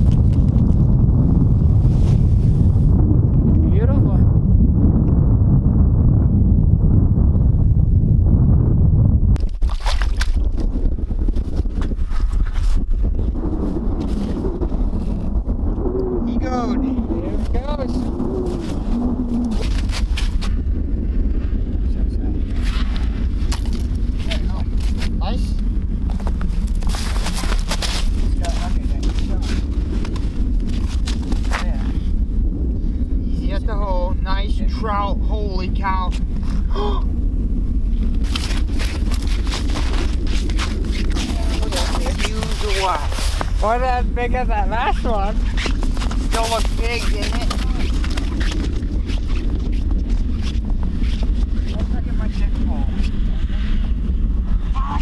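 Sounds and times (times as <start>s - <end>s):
wind buffeting microphone: 0.0s - 55.0s
low voices: 33.2s - 37.2s.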